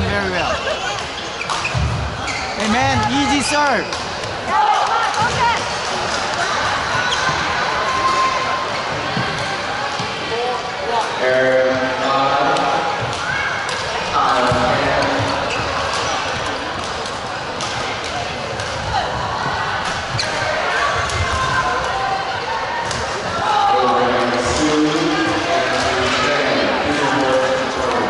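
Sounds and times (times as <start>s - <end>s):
background chatter: 0.0s - 28.0s.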